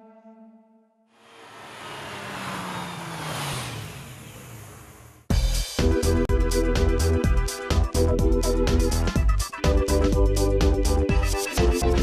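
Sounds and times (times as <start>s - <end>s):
vehicle passing by rushing: 1.2s - 5.3s
low engine tone falling: 1.2s - 6.1s.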